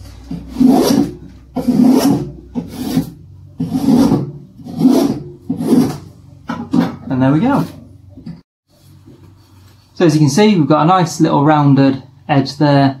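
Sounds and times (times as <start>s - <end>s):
spoke shave scraping wood: 0.1s - 6.0s.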